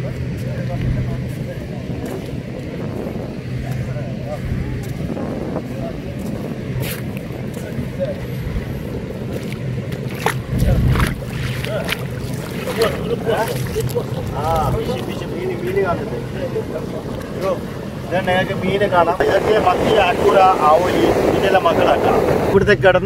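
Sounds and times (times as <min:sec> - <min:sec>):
faint voices: 0:00.0 - 0:23.0
wind buffeting microphone: 0:00.0 - 0:23.0.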